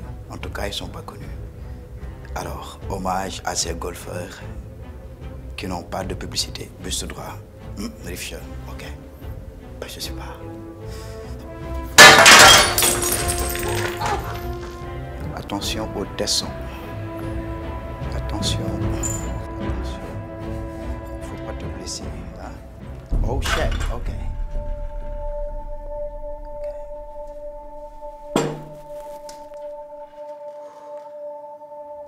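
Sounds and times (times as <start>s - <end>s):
background music: 0.0s - 32.0s
glass shards tinkling: 12.0s - 14.7s
glass smashing: 12.0s - 14.7s, 28.3s - 29.3s
club knocking on glass tabletop: 28.4s - 28.8s.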